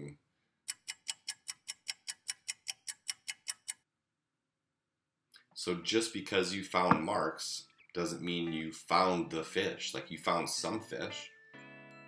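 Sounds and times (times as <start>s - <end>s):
clock ticking: 0.7s - 3.8s.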